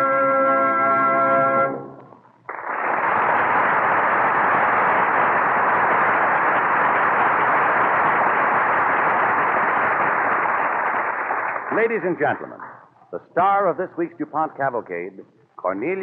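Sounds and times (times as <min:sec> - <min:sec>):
studio audience applauding: 0:02.4 - 0:12.8.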